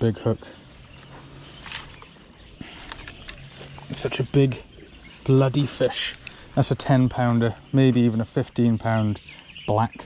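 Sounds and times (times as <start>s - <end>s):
faint clicks and rustles: 0.7s - 7.9s.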